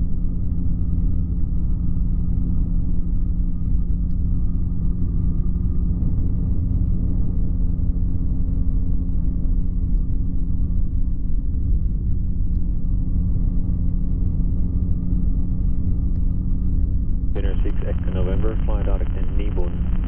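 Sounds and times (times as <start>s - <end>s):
aircraft engine and propeller drone: 12.4s - 20.0s.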